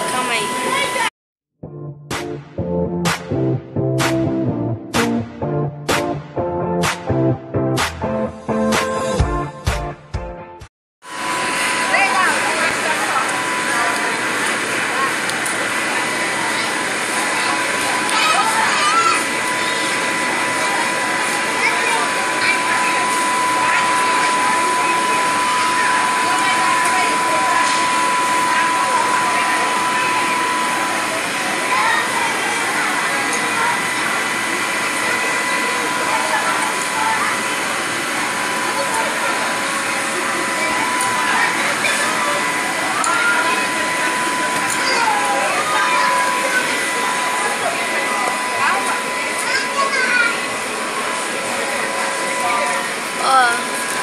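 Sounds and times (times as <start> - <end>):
high-pitched hum: 0.0 - 1.1, 11.1 - 54.0
chatter of children and adults: 11.8 - 54.0.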